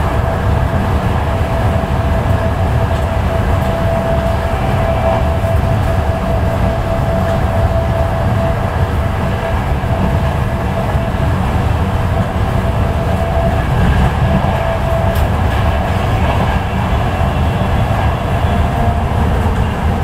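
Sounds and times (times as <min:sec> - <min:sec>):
steady whine: 0:00.0 - 0:20.0
train coach rumble: 0:00.0 - 0:20.0.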